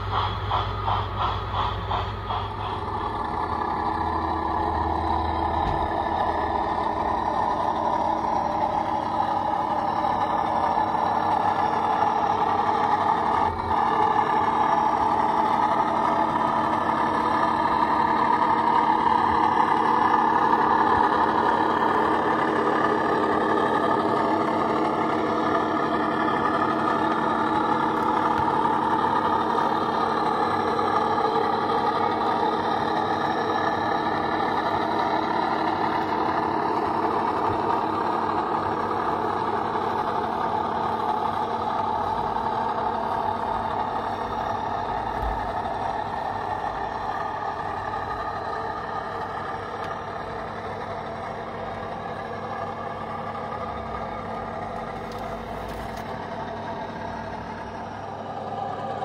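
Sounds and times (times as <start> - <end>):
model diesel engine sound: 0.0 - 59.0.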